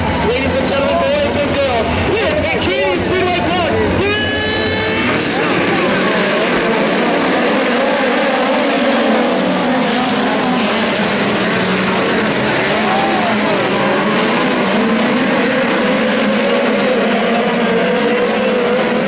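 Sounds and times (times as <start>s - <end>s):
race car engines: 0.0s - 19.0s.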